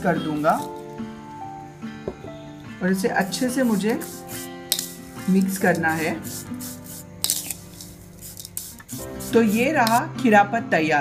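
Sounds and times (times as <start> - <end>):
spatula scraping dry mix in bowl: 0.2 - 0.8, 3.3 - 10.1.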